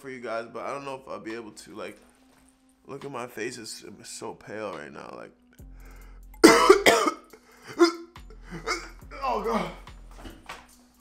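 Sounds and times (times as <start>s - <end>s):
man coughing and gagging: 6.4s - 9.9s.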